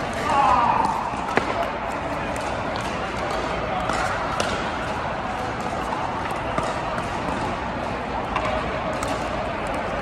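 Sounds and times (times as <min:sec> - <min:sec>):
murmur of indoor hall: 0:00.0 - 0:10.0.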